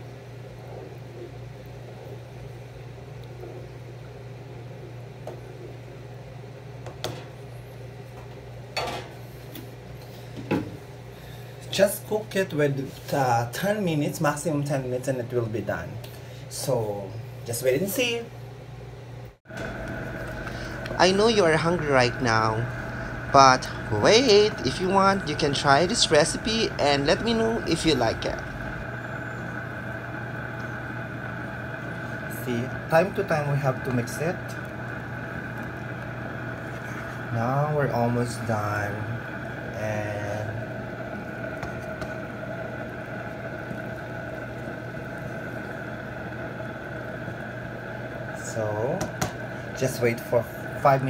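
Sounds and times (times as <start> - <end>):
background hum and hiss: 0.0 - 51.0
high whine: 19.2 - 51.0.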